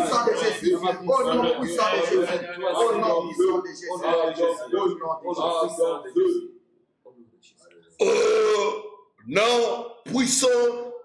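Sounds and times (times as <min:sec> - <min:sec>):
man crying out: 0:08.0 - 0:09.0.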